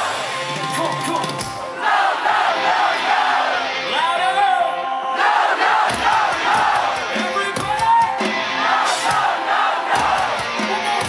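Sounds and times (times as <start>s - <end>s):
crowd singing along in unison: 1.6s - 3.8s, 5.0s - 7.2s, 8.4s - 11.0s.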